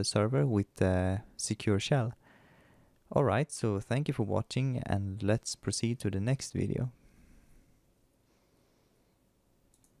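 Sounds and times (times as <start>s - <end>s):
faint clicks: 9.7s - 10.0s.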